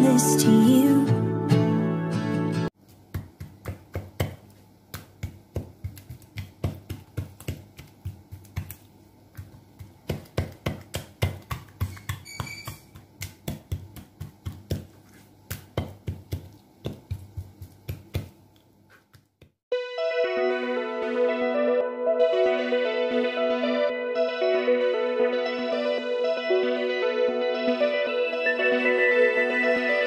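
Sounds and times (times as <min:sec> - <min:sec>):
fork tapping on cutting board: 0:09.4 - 0:14.9, 0:15.5 - 0:18.3.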